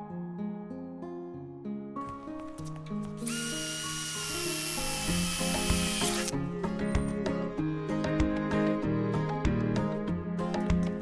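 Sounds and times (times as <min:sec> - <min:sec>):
background music: 0:00.0 - 0:11.0
electric screwdriver whine: 0:03.2 - 0:06.4.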